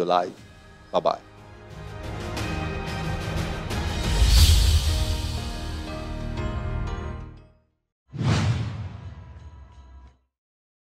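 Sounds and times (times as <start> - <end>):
whoosh: 8.1 - 9.4.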